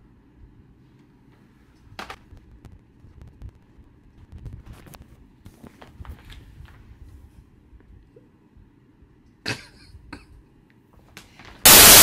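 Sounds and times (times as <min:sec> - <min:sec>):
faint clicks and rustles: 0:00.9 - 0:08.2
static hiss burst: 0:11.6 - 0:12.0.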